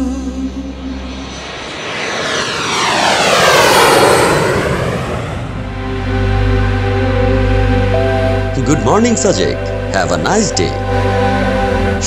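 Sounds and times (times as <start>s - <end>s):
airplane flyby whoosh: 0.5s - 8.6s.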